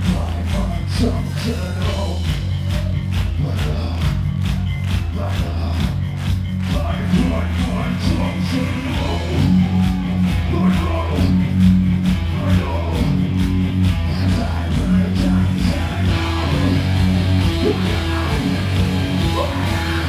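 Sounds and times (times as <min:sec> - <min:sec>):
bass guitar: 0:00.0 - 0:20.0
drum kit beat: 0:00.0 - 0:20.0
electric guitars: 0:00.0 - 0:20.0.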